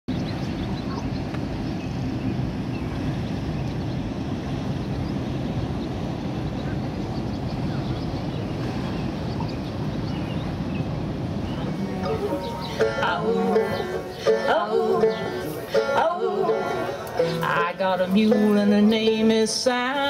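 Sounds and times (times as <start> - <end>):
ferry engines rumbling: 0.1 - 20.0.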